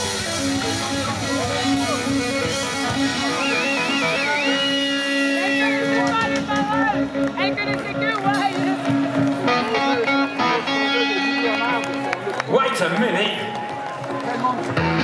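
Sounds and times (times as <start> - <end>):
voices over guitars: 0.0 - 12.1
electric guitars ringing: 0.0 - 12.5.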